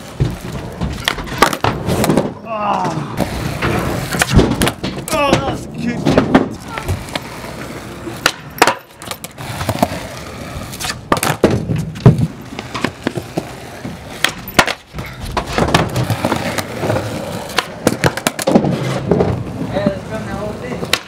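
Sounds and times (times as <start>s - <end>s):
skateboard deck clacking on ground: 0.0s - 10.1s, 10.8s - 19.5s, 20.7s - 21.0s
skateboard wheels rolling on concrete: 0.0s - 21.0s.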